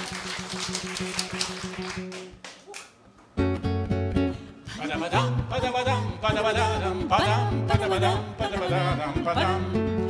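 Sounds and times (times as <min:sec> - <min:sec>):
acoustic guitar: 0:00.0 - 0:10.0
person singing: 0:04.7 - 0:10.0.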